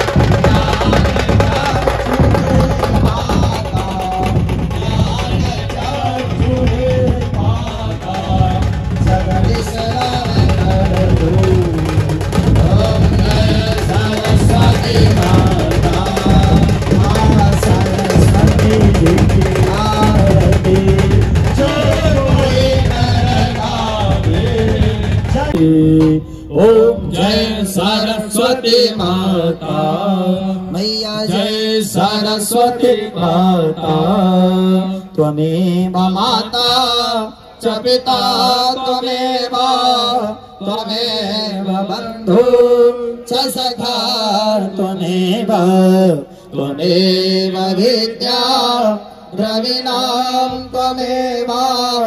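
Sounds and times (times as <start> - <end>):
men singing a hymn over loudspeaker: 0.0 - 52.0.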